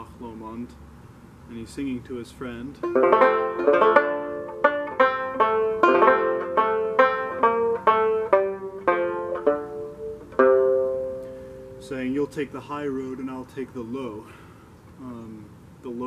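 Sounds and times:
banjo plucked notes: 0:02.8 - 0:12.6.

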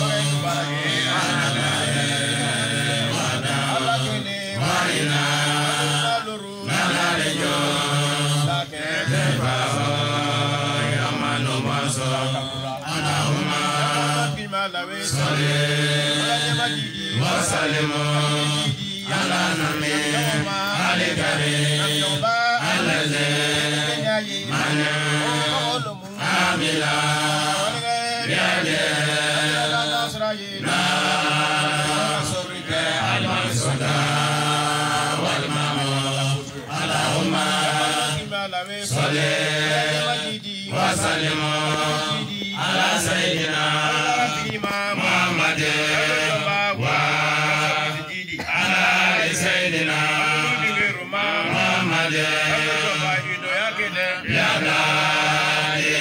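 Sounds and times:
men chanting through microphones: 0:00.0 - 0:56.0.

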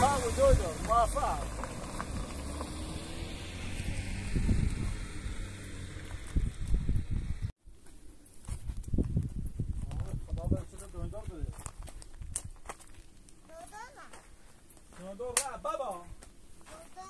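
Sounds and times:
footsteps on gravel: 0:00.0 - 0:03.1, 0:08.3 - 0:17.0.

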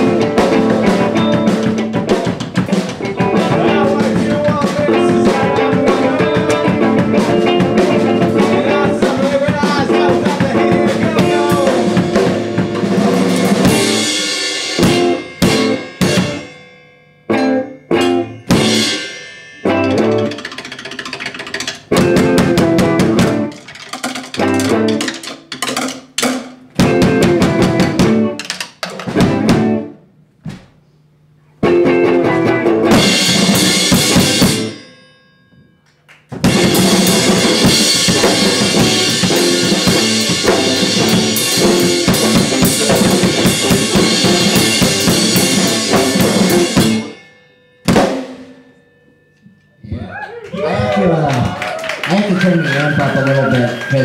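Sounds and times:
electric guitar: 0:00.0 - 0:16.5, 0:17.3 - 0:25.9, 0:26.8 - 0:30.0, 0:31.6 - 0:34.9, 0:36.3 - 0:47.2
drum kit: 0:00.0 - 0:16.6, 0:17.3 - 0:30.0, 0:31.6 - 0:34.9, 0:36.2 - 0:48.8.

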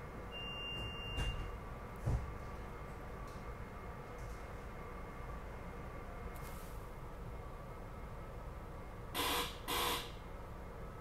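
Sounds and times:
low hum of train car: 0:00.0 - 0:11.0
buzzy electronic warning tones: 0:09.2 - 0:10.2.

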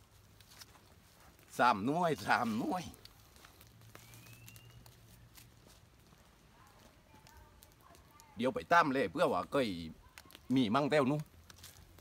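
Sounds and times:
faint outdoor ambience: 0:00.0 - 0:12.0
faint scattered clicks: 0:02.9 - 0:08.4, 0:10.0 - 0:12.0
thin high whistle: 0:04.0 - 0:04.9.

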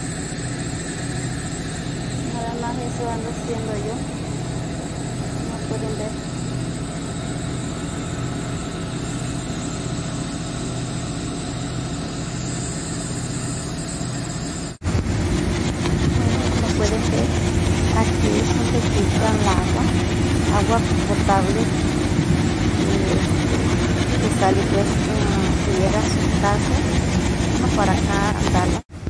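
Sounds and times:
low machinery rumble: 0:00.0 - 0:14.2, 0:14.8 - 0:29.0
engine idling: 0:00.0 - 0:28.8.

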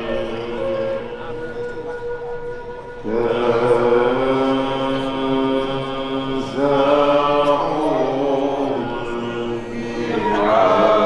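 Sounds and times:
men chanting: 0:03.0 - 0:11.0.

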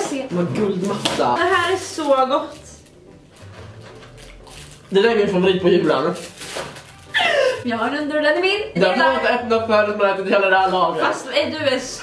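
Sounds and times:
rustling of wrappers: 0:00.5 - 0:07.6.

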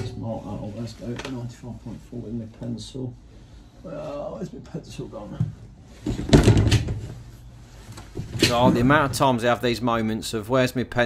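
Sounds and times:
objects knocking and rattling: 0:05.4 - 0:07.3, 0:08.0 - 0:09.2.

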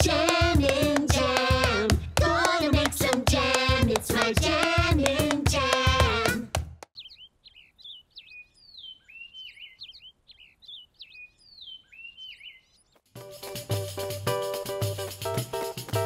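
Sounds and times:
loud sung music: 0:00.0 - 0:06.5
music with drum beat: 0:00.0 - 0:06.9, 0:13.2 - 0:16.0
birds chirping and whistling: 0:07.0 - 0:13.0.

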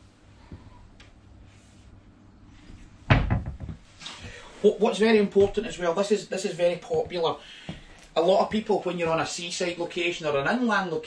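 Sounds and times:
cupboard door shutting: 0:03.1 - 0:03.8.

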